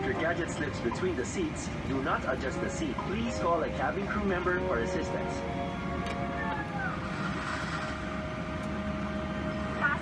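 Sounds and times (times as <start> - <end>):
airliner cabin hum: 0.0 - 10.0.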